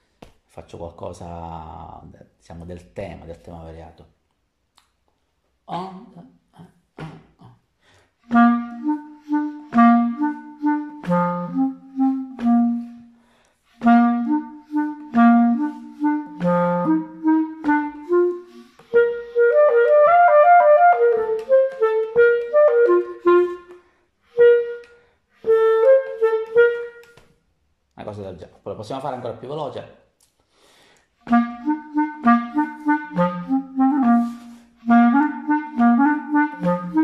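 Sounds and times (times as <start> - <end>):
solo clarinet playing jazz: 8.3 - 27.3, 31.2 - 37.0.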